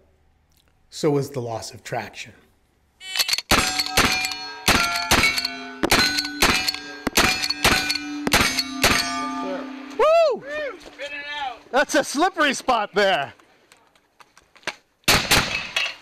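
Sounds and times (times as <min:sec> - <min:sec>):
rifle shots: 0:03.5 - 0:09.0, 0:15.1 - 0:15.9
steel target ringing: 0:03.5 - 0:10.5
man shouting: 0:10.0 - 0:11.6.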